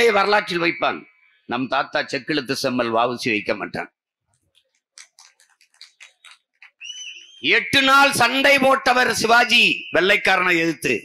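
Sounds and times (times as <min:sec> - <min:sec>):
man speaking into a microphone: 0:00.0 - 0:04.0, 0:07.4 - 0:11.0.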